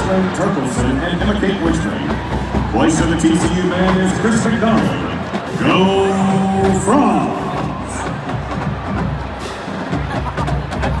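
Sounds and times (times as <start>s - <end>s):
drumline playing: 0.0s - 11.0s.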